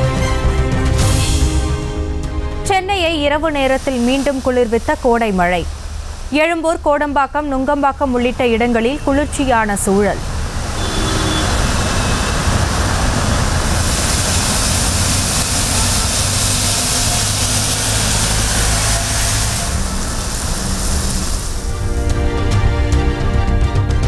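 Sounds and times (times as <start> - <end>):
low traffic rumble: 0.0 - 23.2
rain hissing on wet road: 3.4 - 6.7, 8.0 - 21.9.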